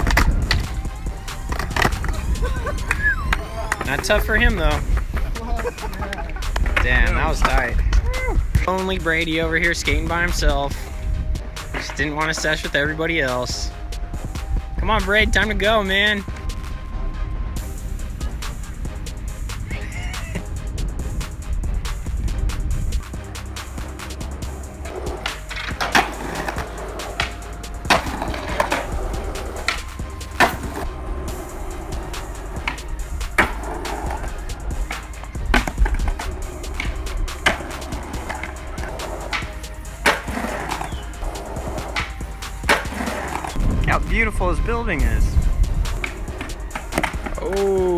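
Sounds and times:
skateboard clacks: 0.0 - 8.7, 24.8 - 43.6, 45.9 - 47.9
skateboard wheels rolling on stone: 0.0 - 10.9, 18.2 - 47.9.

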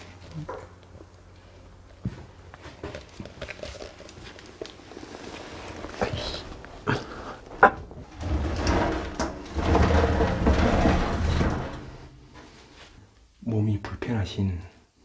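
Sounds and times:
rubbing and scraping noise: 7.6 - 13.0.

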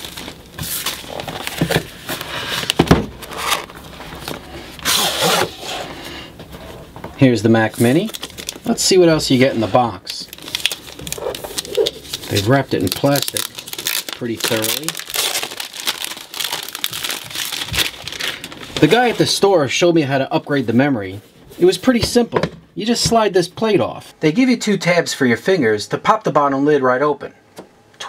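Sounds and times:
plastic wrapping crinkling: 0.0 - 5.1, 7.5 - 19.4.

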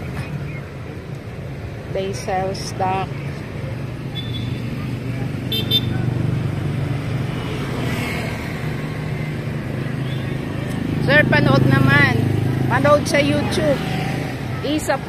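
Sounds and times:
street traffic hum: 0.0 - 15.0.

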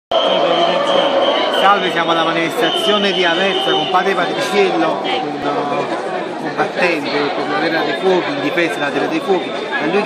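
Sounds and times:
faint crowd noise: 0.1 - 10.0
men talking: 0.1 - 10.0.

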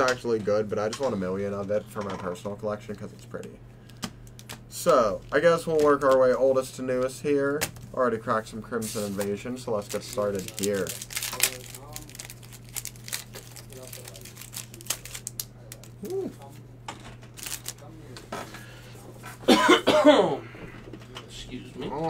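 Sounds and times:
cards being handled: 8.8 - 16.6, 17.3 - 18.3
foil wrapper crinkling and tearing: 8.9 - 16.5, 17.3 - 17.9
person coughing: 19.4 - 20.6.

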